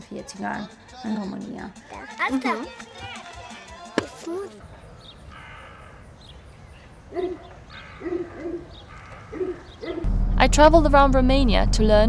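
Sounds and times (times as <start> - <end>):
bird hooting: 7.0 - 10.1.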